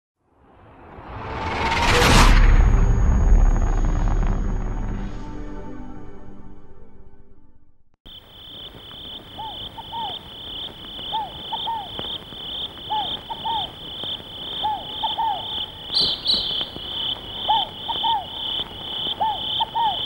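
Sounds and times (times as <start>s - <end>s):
crickets chirping: 8.1s - 20.0s
frogs calling: 8.1s - 20.0s
high double chirp: 8.2s - 20.0s.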